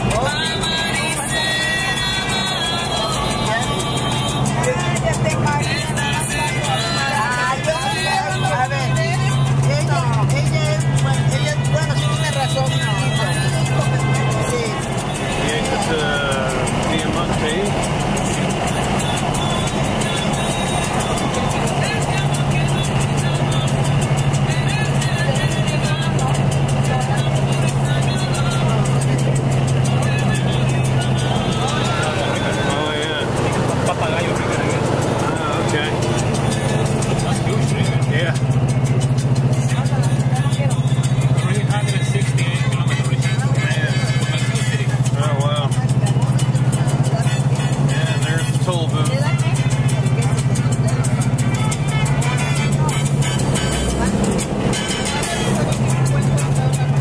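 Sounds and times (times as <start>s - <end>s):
engine and road noise: 0.0s - 57.0s
music with vocals on car stereo: 0.0s - 57.0s.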